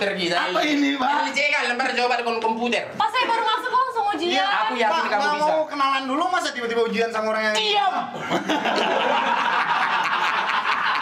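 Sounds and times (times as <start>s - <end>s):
group laughter: 8.1s - 11.0s.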